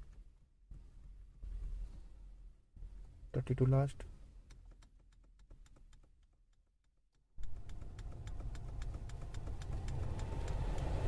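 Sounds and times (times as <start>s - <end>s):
air-conditioning blower rushing: 7.8s - 11.0s.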